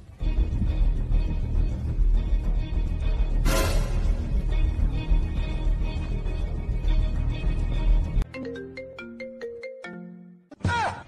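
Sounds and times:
loud bass-heavy music: 2.6s - 5.8s
marimba-like ringtone melody: 8.2s - 10.4s.

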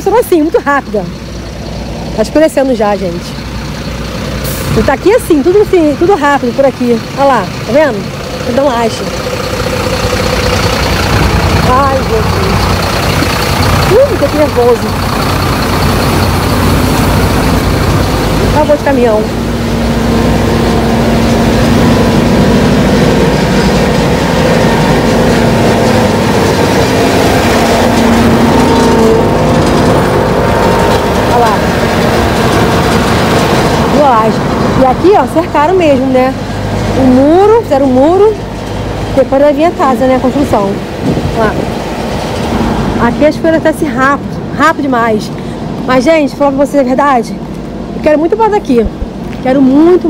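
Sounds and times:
woman's voice: 0.0s - 1.2s, 2.1s - 3.4s, 4.7s - 9.2s, 11.5s - 15.0s, 18.5s - 19.4s, 31.3s - 31.7s, 33.9s - 38.4s, 39.1s - 41.7s, 43.0s - 47.4s, 48.0s - 50.0s
diesel truck engine idling: 0.0s - 50.0s.

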